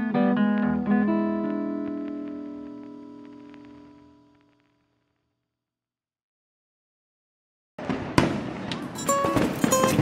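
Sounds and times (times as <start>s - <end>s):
firework pops and crackles: 7.8s - 10.0s.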